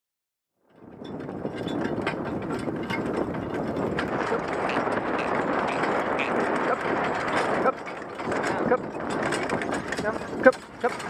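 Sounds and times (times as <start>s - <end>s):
carriage rattling over dirt track: 0.7s - 11.0s.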